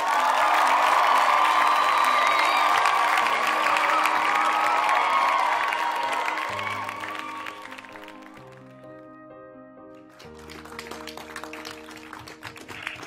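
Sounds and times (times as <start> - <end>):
crowd cheering and applauding: 0.0 - 9.0, 10.0 - 13.0
music playing: 2.2 - 13.0.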